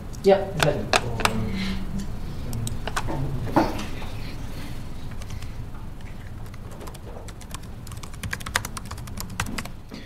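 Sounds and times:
laptop keyboard typing: 2.6s - 3.1s, 5.0s - 9.8s.

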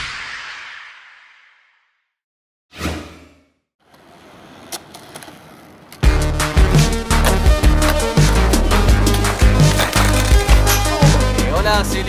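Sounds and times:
swoosh: 0.0s - 2.0s.

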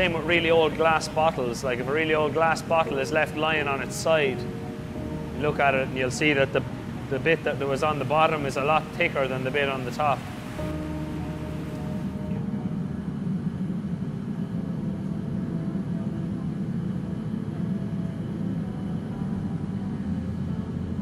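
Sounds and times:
faint held music notes: 0.0s - 21.0s
gas burners and furnace roaring: 0.0s - 21.0s.

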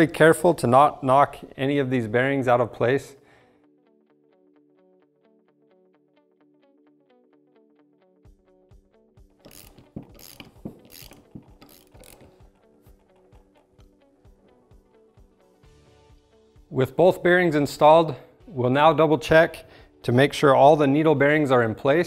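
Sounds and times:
soft plucked background music: 3.7s - 22.0s
metal tool parts clinking: 9.5s - 12.4s.

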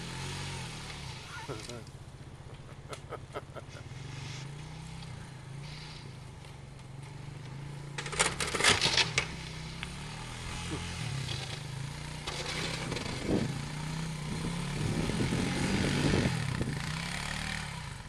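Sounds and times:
plow blade pushing snow: 0.0s - 18.0s
quad engine running under load: 0.0s - 18.0s.

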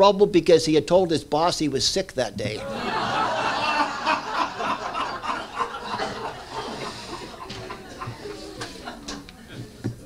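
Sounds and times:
audience laughter: 2.6s - 9.8s
murmur of voices: 4.7s - 10.0s.

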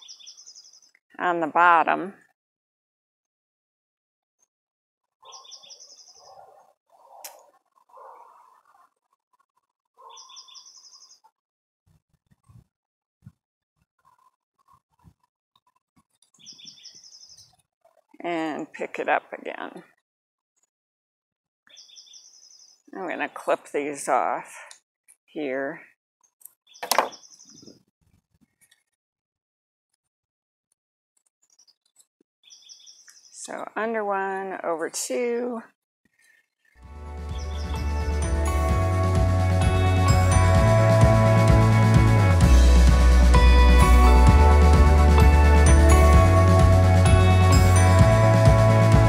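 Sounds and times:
songbird chirping: 0.0s - 1.0s, 5.2s - 8.9s, 10.0s - 11.3s, 16.3s - 17.6s, 21.7s - 23.4s, 26.2s - 27.8s, 31.4s - 35.3s, 37.3s - 38.6s.

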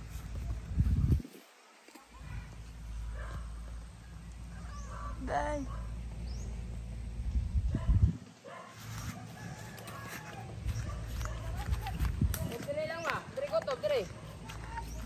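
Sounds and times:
distant voices: 1.6s - 7.5s
rooster crowing: 9.0s - 10.6s.

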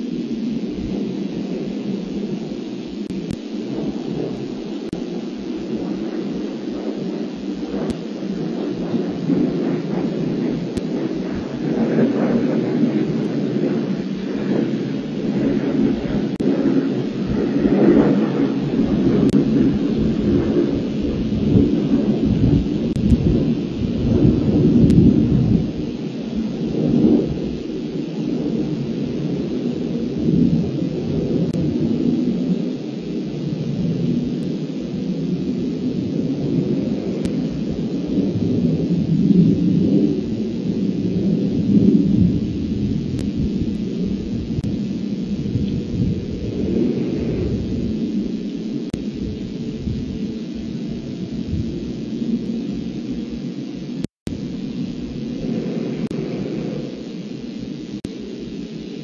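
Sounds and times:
low rumbling noise: 0.0s - 59.0s.

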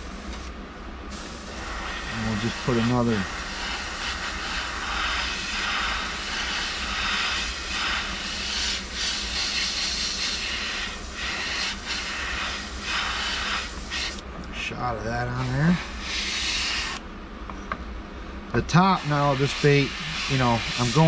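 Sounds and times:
airbrush spraying hiss: 0.0s - 0.5s, 1.1s - 14.2s, 15.4s - 17.0s, 18.9s - 21.0s.

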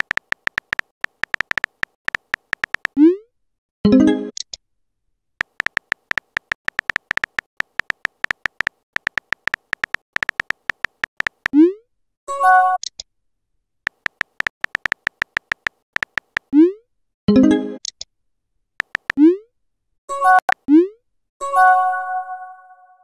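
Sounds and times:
phone keyboard tap clicks: 0.0s - 3.0s, 5.4s - 11.5s, 13.9s - 16.5s, 18.8s - 19.2s.

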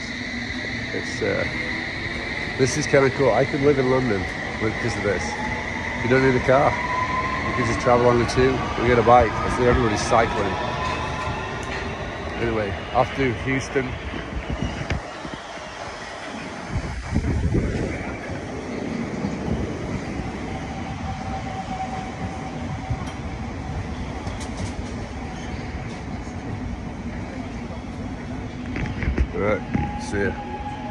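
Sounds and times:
steady train whine: 0.0s - 30.9s
underground train rumbling: 0.0s - 30.9s.

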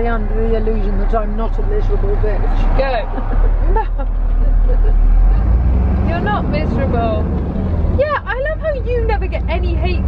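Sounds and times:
voice: 0.0s - 5.5s, 6.1s - 7.3s, 8.0s - 10.0s
diesel engine droning: 0.0s - 10.0s.

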